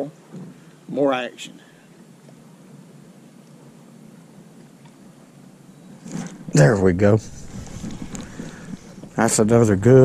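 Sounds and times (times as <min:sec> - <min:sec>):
wind buffeting microphone: 0:06.4 - 0:10.0.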